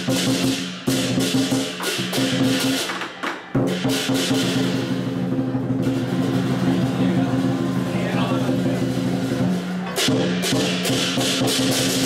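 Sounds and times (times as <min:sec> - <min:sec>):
drum roll: 0:00.0 - 0:12.0
cymbals ringing: 0:03.5 - 0:12.0.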